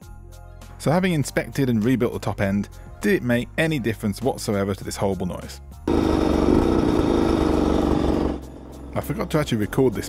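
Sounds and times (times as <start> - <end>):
two-stroke motorcycle engine running: 5.9 - 9.6.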